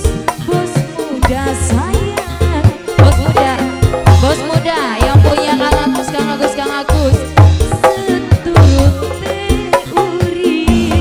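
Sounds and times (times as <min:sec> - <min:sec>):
live band music: 0:00.0 - 0:11.0.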